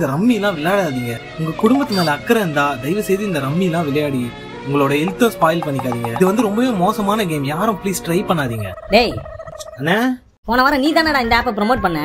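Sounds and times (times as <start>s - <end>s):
wordless voice wobbling in pitch: 5.6s - 7.2s, 8.3s - 10.0s.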